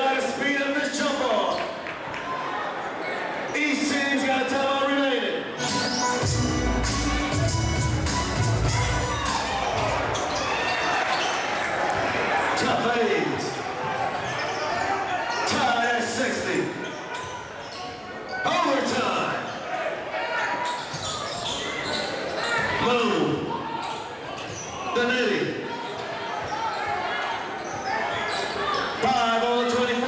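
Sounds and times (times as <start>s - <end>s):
echoing crowd and player voices: 0.0s - 30.0s.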